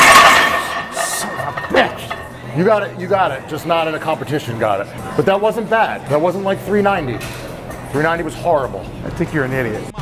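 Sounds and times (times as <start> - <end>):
barbell clinking into rack: 0.0 - 2.3
background music: 0.0 - 10.0.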